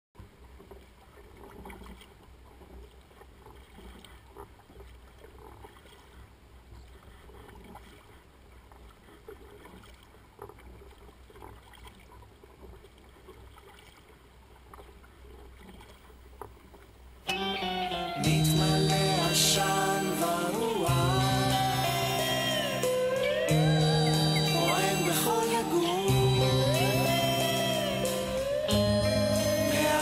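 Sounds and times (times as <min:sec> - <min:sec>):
water trickling along hull: 0:00.2 - 0:17.4
steady low rumble: 0:18.2 - 0:30.0.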